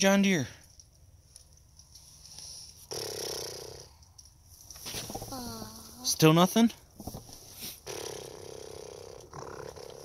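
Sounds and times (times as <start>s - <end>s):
child imitating an engine: 5.2s - 6.1s.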